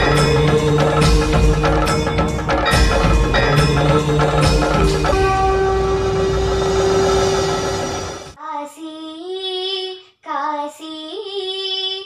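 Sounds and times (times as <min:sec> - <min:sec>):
intro music held note: 0:00.0 - 0:08.4
girl singing unaccompanied: 0:08.4 - 0:12.0.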